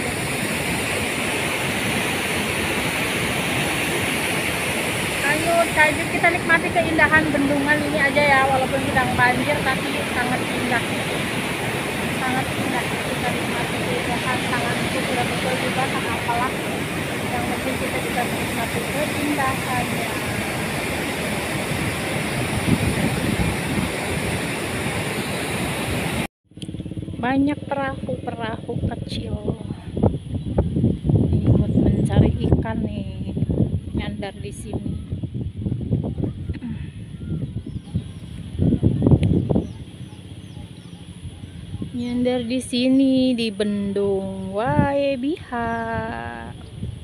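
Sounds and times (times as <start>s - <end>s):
water rushing over a weir: 0.0s - 26.3s.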